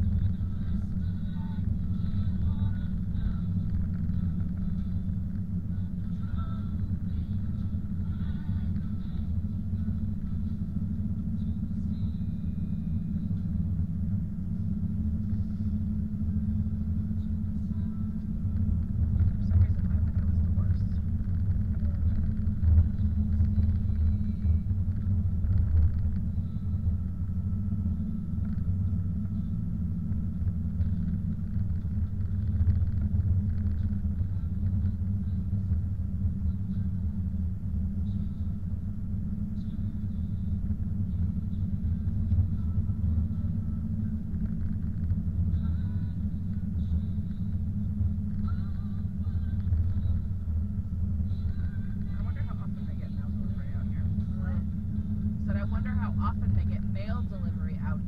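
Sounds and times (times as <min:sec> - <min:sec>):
car driving on snowy road: 0:00.0 - 0:58.0.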